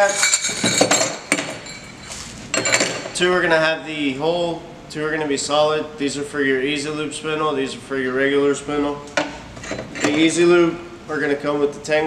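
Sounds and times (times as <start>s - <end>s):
metal caps clinking: 0.0s - 3.2s.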